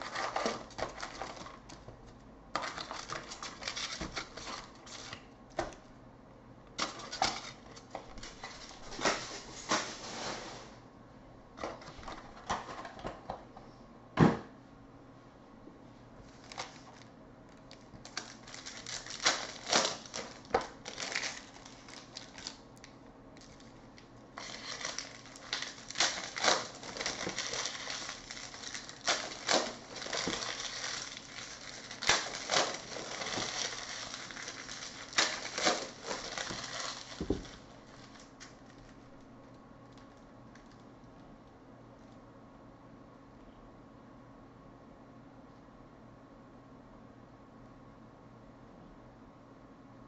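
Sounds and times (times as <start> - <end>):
card pack wrappers crinkling: 0.0 - 5.2, 6.8 - 10.3, 16.3 - 39.3
wrapper snaps: 16.4 - 39.3.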